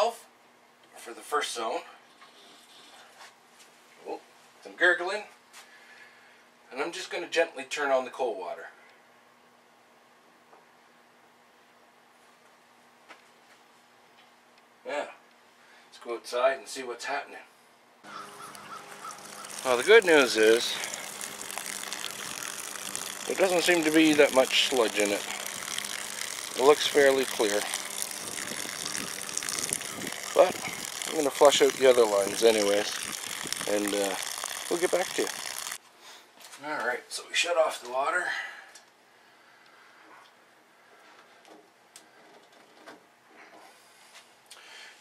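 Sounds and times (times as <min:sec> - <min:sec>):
steady low hum: 0:18.0 - 0:35.8
hose water splashing onto lawn: 0:18.1 - 0:35.8.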